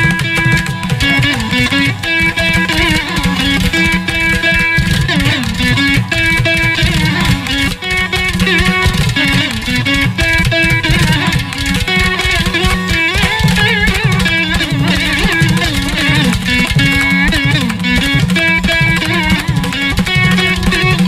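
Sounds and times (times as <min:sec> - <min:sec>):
veena plucked notes: 0:00.0 - 0:21.0.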